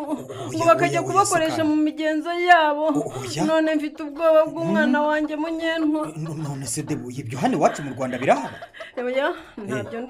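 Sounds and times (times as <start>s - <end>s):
person chuckling: 4.6s - 5.2s, 7.6s - 10.0s.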